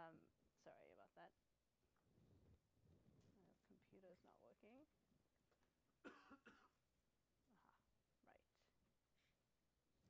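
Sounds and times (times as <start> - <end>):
faint cough: 6.0 - 6.8.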